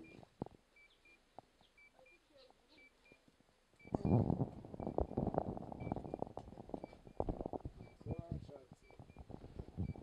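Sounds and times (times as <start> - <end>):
faint high-pitched beeps: 0.0 - 10.0.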